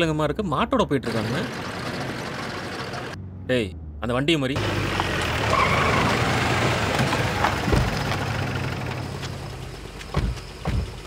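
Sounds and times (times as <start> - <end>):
vehicle engines running: 1.0 - 11.0
tyre and road noise: 1.1 - 11.0.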